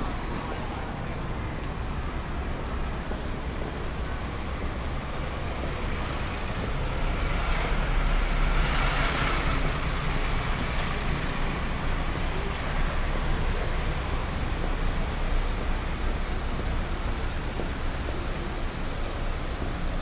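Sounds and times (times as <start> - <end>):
car engines rumbling: 0.0 - 20.0.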